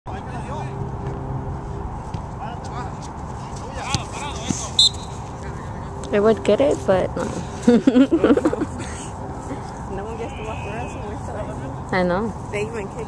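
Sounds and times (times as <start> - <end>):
players shouting and calling: 2.4 - 5.9, 9.5 - 11.9.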